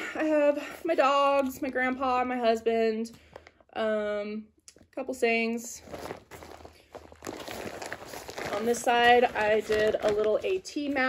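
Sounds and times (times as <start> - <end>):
fabric bag crinkling: 5.6 - 11.0.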